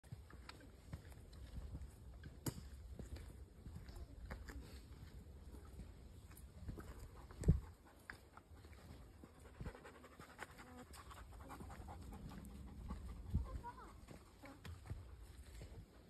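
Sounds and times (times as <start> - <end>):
footsteps on dirt trail: 0.0 - 9.5, 11.0 - 16.0
dog panting: 6.7 - 15.6.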